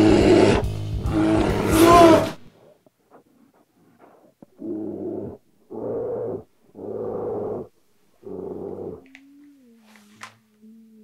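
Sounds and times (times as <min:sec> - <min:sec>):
bear growling: 0:00.0 - 0:11.0.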